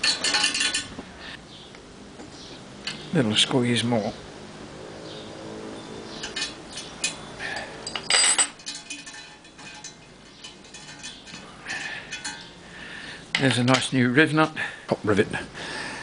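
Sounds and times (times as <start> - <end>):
spanners clinking on metal: 0.0 - 1.0, 6.0 - 14.6.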